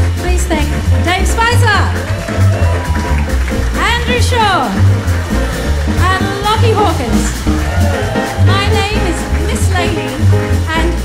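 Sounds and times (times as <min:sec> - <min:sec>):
double bass walking: 0:00.0 - 0:11.0
drum kit: 0:00.0 - 0:11.0
piano: 0:00.0 - 0:11.0.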